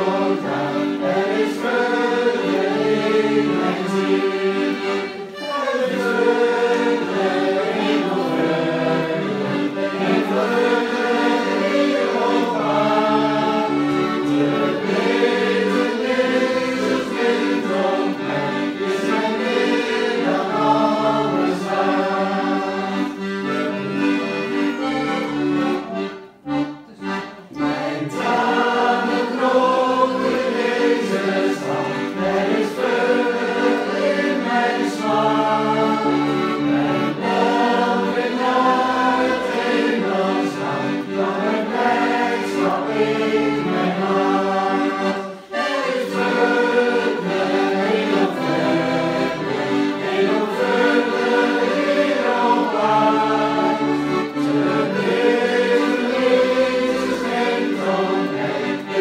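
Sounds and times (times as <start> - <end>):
button accordion: 0.0 - 59.0
group singing a hymn: 0.0 - 59.0.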